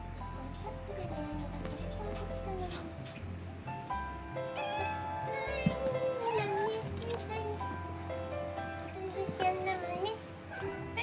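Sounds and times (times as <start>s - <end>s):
background music: 0.0s - 11.0s
cat meowing: 4.5s - 7.5s.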